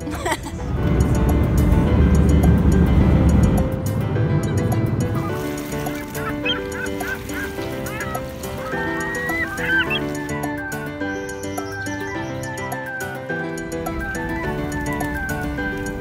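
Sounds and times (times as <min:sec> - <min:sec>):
airliner cabin rumble: 0:00.0 - 0:10.7
background music: 0:00.0 - 0:16.0
short bird calls: 0:05.9 - 0:13.1.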